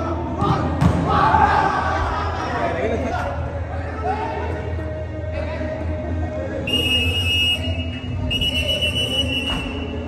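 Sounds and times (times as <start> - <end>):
referee's whistle blasts: 6.7 - 10.0.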